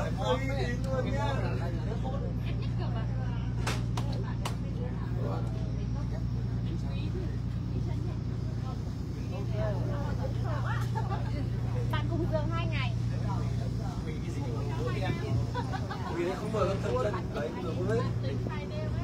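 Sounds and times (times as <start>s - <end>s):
boat engine droning: 0.0s - 19.0s
people talking: 0.0s - 19.0s.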